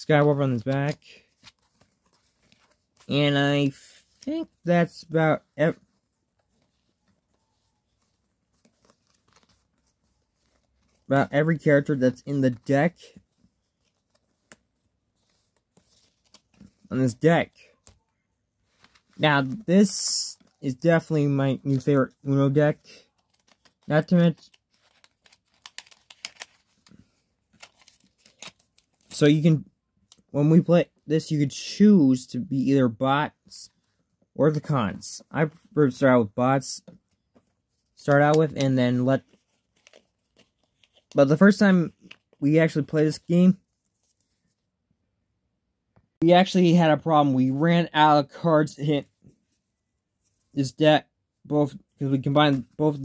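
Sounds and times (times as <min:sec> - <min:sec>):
playing cards clicking and scraping: 0:23.0 - 0:29.1
playing cards clicking: 0:24.4 - 0:26.6.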